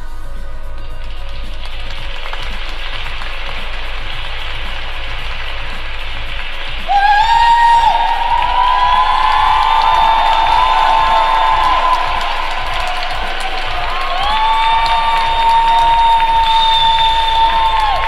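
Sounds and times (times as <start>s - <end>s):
background music: 0.0s - 18.0s
applause: 0.8s - 18.0s.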